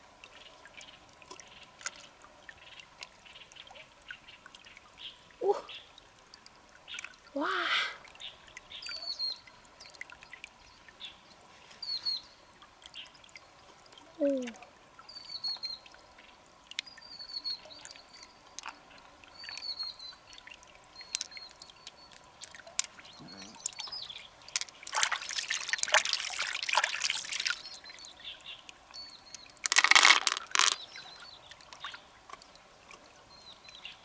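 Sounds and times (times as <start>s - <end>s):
water dribbling: 0.0s - 34.0s
wet squelching handling: 24.5s - 27.6s, 29.6s - 30.8s.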